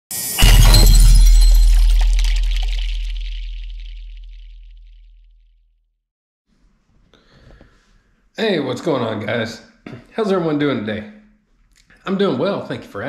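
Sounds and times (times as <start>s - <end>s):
glass shattering: 0.2s - 4.7s
deep boom hit: 0.4s - 5.1s.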